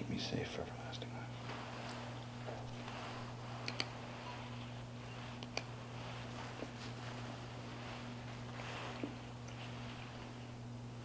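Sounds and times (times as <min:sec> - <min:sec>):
steady low hum: 0:00.0 - 0:11.0
man whispering: 0:00.1 - 0:01.4.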